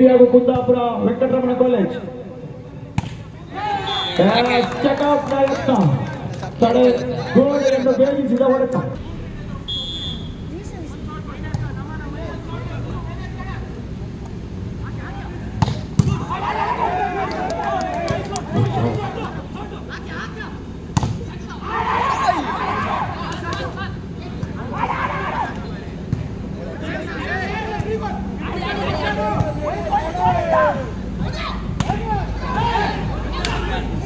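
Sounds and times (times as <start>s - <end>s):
voices shouting: 3.4s - 8.2s, 15.0s - 34.0s.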